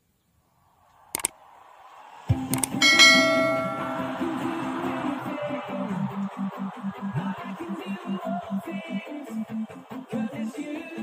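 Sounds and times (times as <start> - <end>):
notification bell ding: 2.8 - 4.7.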